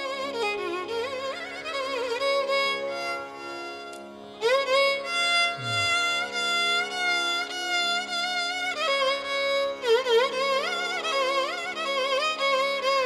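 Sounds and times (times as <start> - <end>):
violin sliding melody: 0.0 - 13.0.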